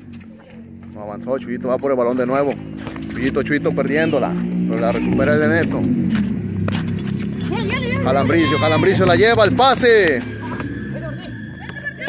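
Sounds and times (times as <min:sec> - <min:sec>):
man's voice: 0:00.9 - 0:06.0, 0:08.0 - 0:10.4.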